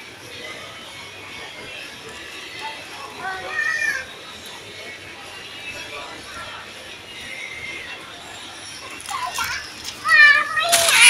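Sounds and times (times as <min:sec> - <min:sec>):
young child shouting: 0:03.2 - 0:04.1.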